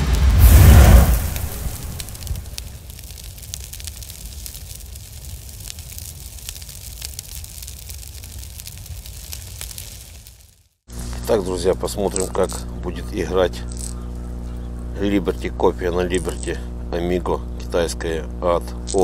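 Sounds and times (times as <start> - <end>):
loud whooshing hit: 0.0 - 2.8
low rumble: 0.0 - 9.6
fire crackling: 0.0 - 17.7.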